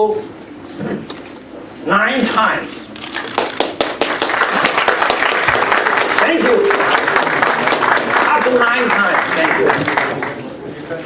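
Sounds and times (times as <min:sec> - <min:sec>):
audience applause: 0:03.2 - 0:10.4.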